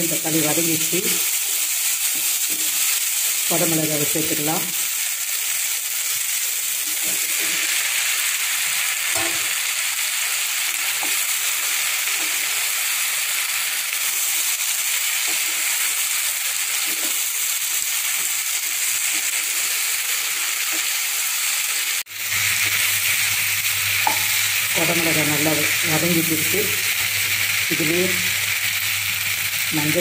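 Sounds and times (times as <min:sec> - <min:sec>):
vegetables sizzling in a pan: 0:00.0 - 0:30.0
wooden spatula scraping: 0:06.8 - 0:07.9, 0:16.7 - 0:17.3.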